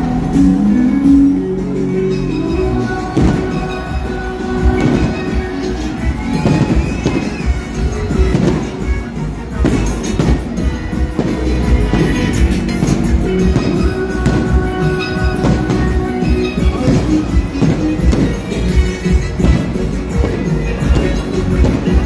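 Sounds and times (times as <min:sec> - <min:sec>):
music playing: 0:00.0 - 0:22.0
fireworks bangs: 0:02.8 - 0:22.0.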